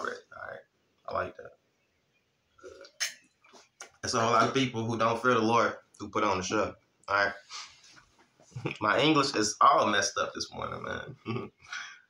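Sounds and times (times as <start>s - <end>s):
man swallowing: 11.0s - 11.9s.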